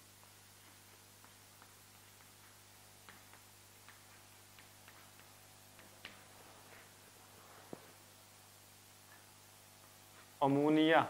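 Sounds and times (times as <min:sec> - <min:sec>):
low steady hum: 0:00.0 - 0:11.0
chalk tapping on blackboard: 0:00.2 - 0:07.0.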